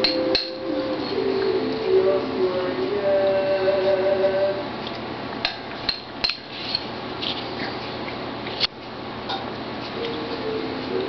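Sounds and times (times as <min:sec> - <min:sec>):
background music: 0:00.0 - 0:04.2.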